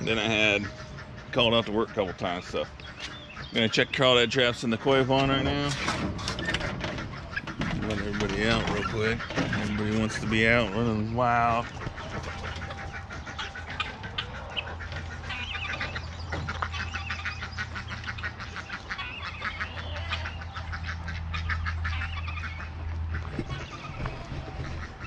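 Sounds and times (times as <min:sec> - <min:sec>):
chickens clucking: 0:00.0 - 0:25.0.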